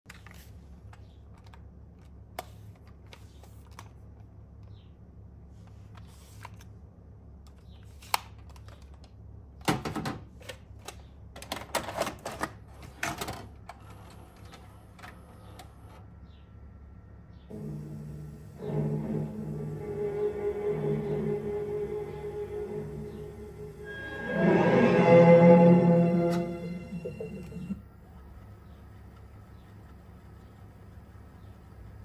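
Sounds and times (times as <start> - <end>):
low steady hum: 14.4 - 32.0.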